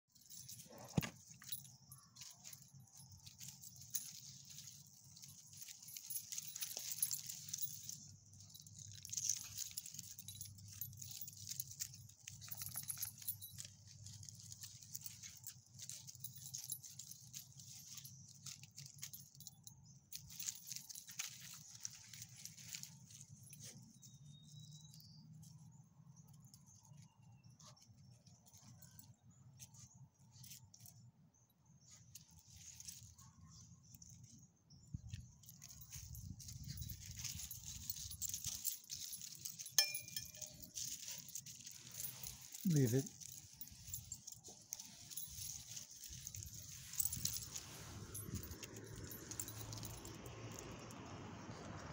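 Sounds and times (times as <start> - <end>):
leash clips jingling: 0.0 - 51.9
rustling in dry leaves: 0.1 - 24.9, 31.8 - 51.9.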